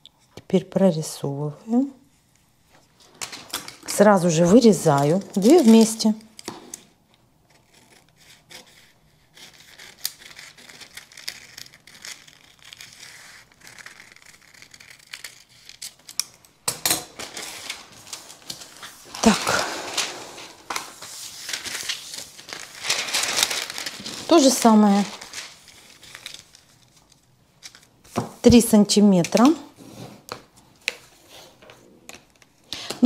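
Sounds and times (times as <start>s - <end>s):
paper rustling and crinkling: 2.7s - 33.0s
scissors snipping paper: 4.6s - 6.8s, 7.5s - 16.4s.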